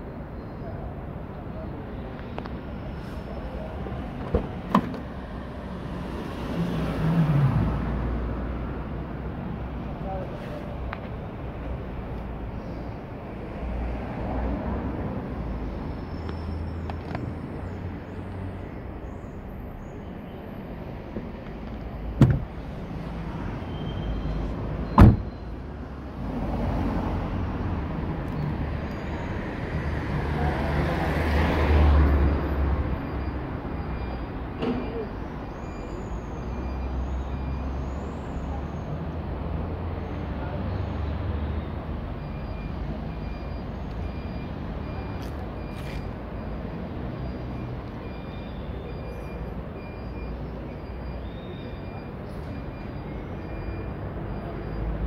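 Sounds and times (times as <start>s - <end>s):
low street traffic: 0.0s - 55.0s
car door shutting: 4.2s - 5.1s, 21.2s - 22.6s, 24.9s - 25.4s.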